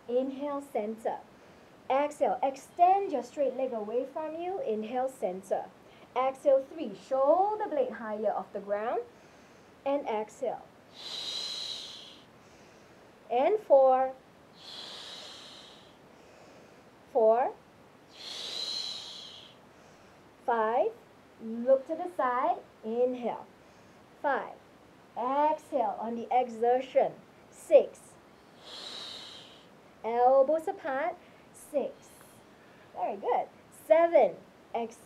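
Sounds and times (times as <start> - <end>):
long breathy exhale: 10.9 - 13.0, 14.6 - 16.9, 18.1 - 20.2, 28.6 - 29.7.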